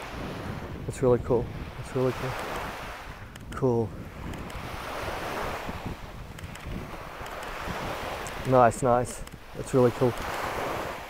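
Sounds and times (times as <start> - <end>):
small waves washing on sand: 0.0 - 11.0
wind on microphone: 0.0 - 11.0.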